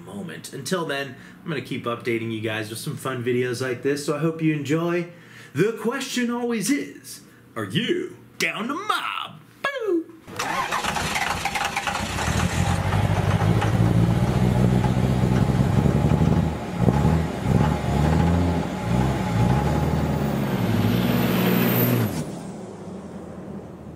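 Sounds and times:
engine revving: 10.3s - 23.9s.

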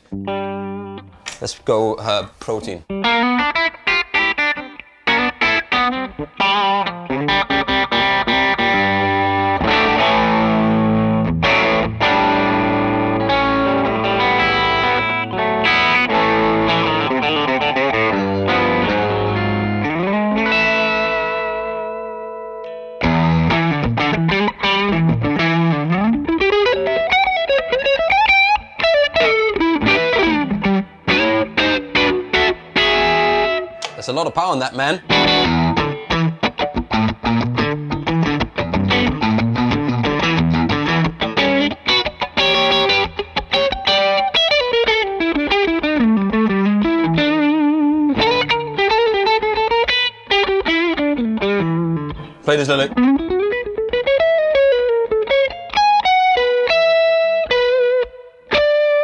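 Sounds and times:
electric guitar through amp: 0.0s - 1.4s, 2.8s - 59.0s.

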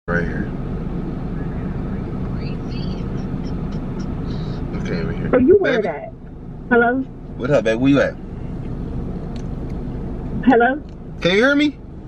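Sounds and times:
car engine idling: 0.1s - 12.0s.

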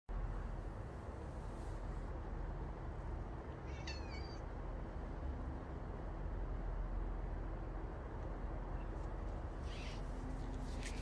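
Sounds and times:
low background hum: 0.1s - 11.0s
cat meowing: 3.6s - 4.5s.

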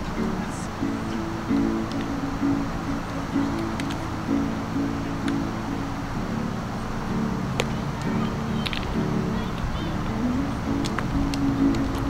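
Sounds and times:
steady hiss: 0.0s - 12.0s
strummed guitar chords: 0.0s - 12.0s.

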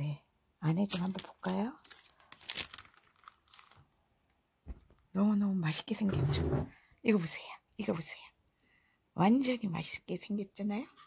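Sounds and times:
baking paper crinkling: 0.8s - 4.0s.

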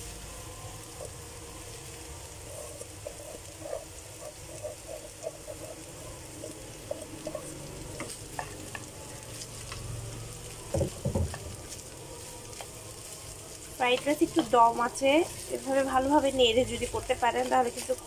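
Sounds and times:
rice sizzling in frying pan: 0.0s - 18.0s.

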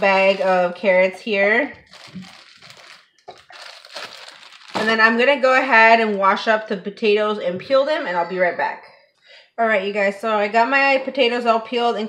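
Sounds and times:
plastic bag crinkling: 0.0s - 0.9s, 1.8s - 5.2s.

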